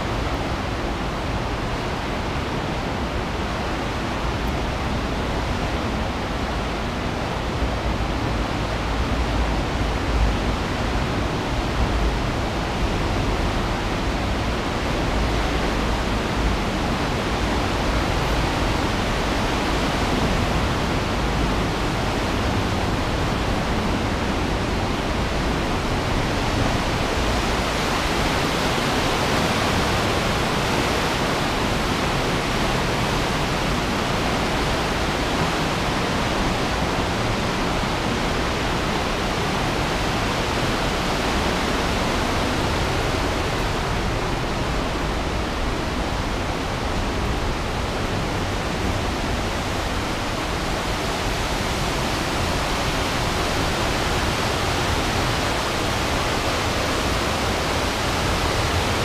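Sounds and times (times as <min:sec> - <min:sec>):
river water rushing: 0:00.0 - 0:59.0.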